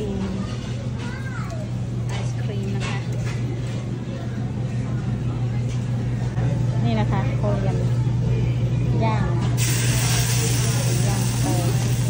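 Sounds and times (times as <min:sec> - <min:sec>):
diners' voices: 0:00.0 - 0:12.0
steady low hum: 0:01.6 - 0:12.0.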